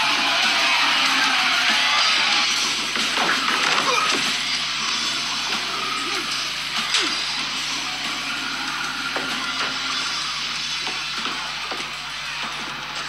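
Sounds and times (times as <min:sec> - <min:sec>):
loud guitar music: 0:00.0 - 0:13.0.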